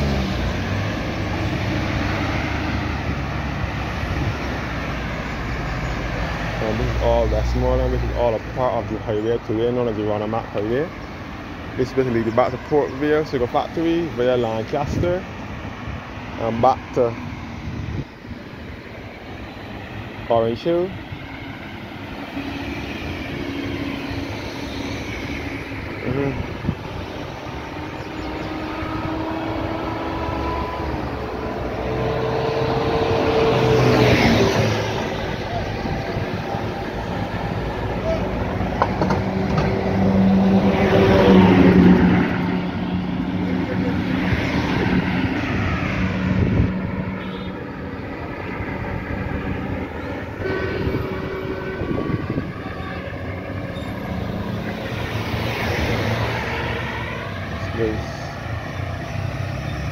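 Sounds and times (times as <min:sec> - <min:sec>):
cars passing close by: 0:00.0 - 0:59.9.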